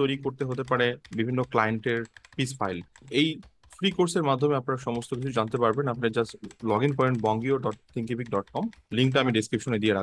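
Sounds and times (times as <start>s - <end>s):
keyboard key clicks: 0.0s - 9.8s
person speaking: 0.0s - 10.0s.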